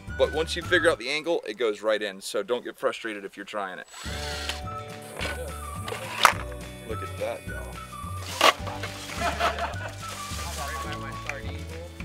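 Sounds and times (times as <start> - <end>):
background music with bass line: 0.0 - 1.0, 4.0 - 12.0.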